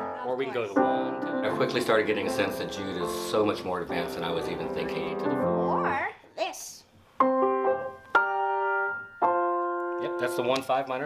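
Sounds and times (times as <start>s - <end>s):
grand piano chords: 0.0s - 6.1s, 7.2s - 11.0s.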